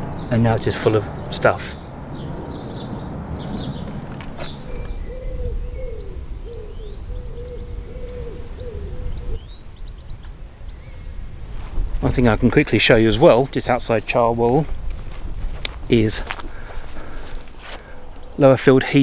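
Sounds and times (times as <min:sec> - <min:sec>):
low rumble: 0:00.0 - 0:13.2
pigeon cooing: 0:04.4 - 0:09.4.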